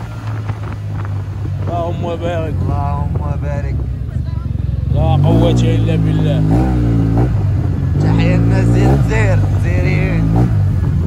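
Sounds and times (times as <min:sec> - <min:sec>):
scooter engine running: 0:00.0 - 0:11.0
person speaking: 0:08.0 - 0:10.4.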